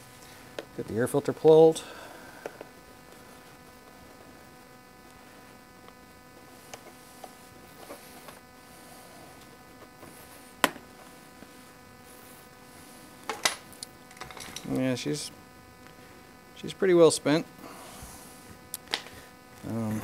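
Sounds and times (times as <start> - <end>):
faint electrical hum: 0.0 - 20.0.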